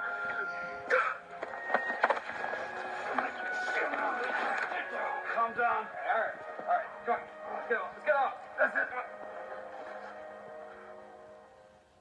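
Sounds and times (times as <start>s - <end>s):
droning film soundtrack: 0.0s - 12.0s.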